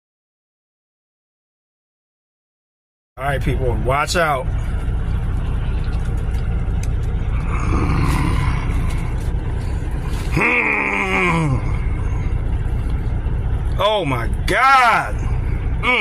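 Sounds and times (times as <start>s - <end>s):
idling vehicle rumble: 3.2s - 16.0s
man groaning with pleasure: 7.3s - 9.1s, 10.3s - 12.0s, 15.8s - 16.0s.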